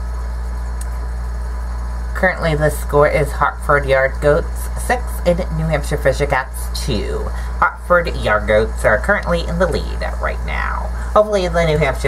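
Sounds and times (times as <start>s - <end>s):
window air conditioner running: 0.0s - 12.0s.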